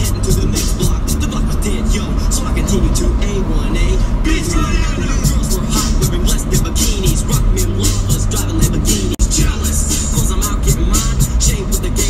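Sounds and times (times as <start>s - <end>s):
music with steady beat: 0.0s - 3.0s, 4.6s - 12.0s
car driving on road rumble: 0.0s - 12.0s
voices singing along: 0.0s - 12.0s.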